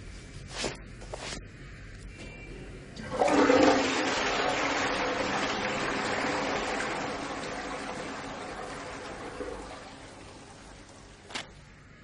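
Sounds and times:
running water rushing: 3.1s - 11.3s.

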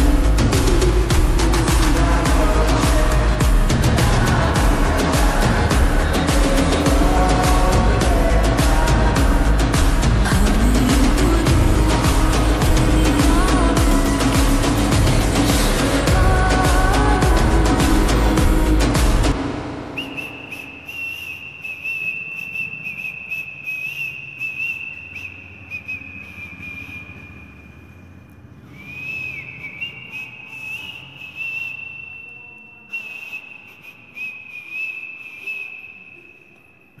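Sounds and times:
high steady whistle-like tone: 19.8s - 37.0s.

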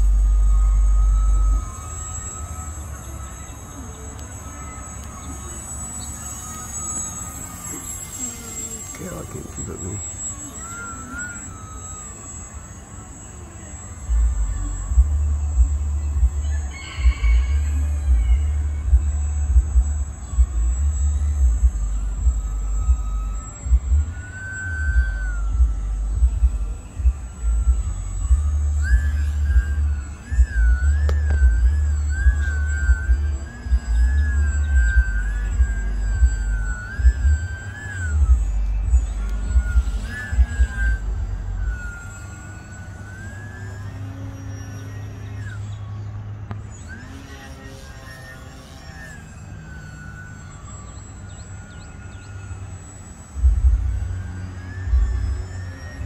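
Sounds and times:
model aircraft motor whine: 0.0s - 56.0s
wind rumble on microphone: 14.1s - 49.3s, 52.5s - 56.0s.

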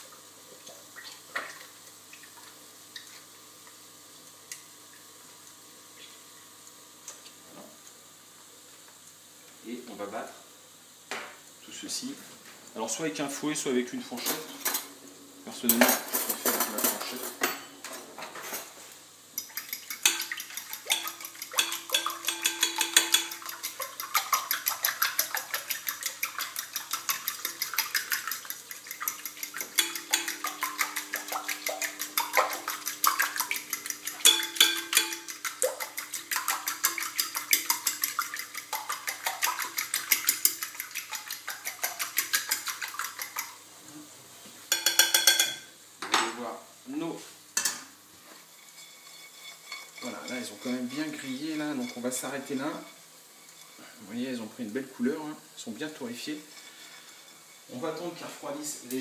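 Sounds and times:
fork clicking against glass bowl: 19.4s - 43.4s.

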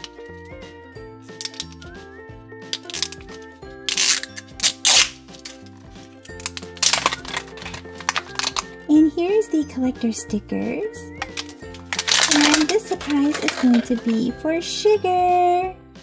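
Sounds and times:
light background music: 0.0s - 16.0s
plastic wrapper crinkling and tearing: 1.4s - 1.8s, 2.8s - 8.7s, 11.2s - 14.2s.

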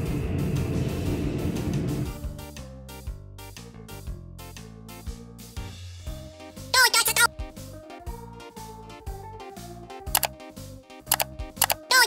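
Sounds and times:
children's music with bass line: 1.7s - 12.0s
mouse click sound effects: 10.2s - 10.4s, 11.1s - 12.0s.

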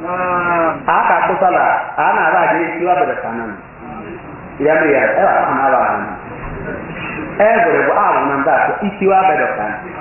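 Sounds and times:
man preaching: 0.0s - 3.7s, 4.6s - 6.2s, 7.4s - 10.0s.

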